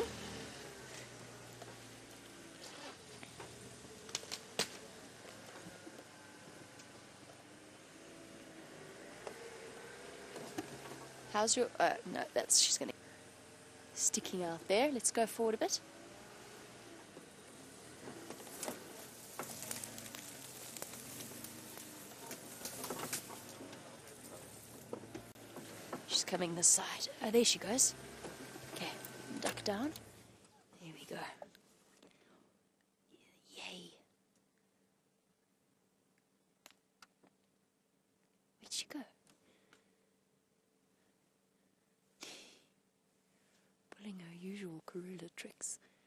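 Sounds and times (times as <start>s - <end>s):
twigs crackling under tyres: 0.0s - 30.4s
faint low engine hum: 0.0s - 34.0s
faint steady background noise: 0.0s - 46.0s.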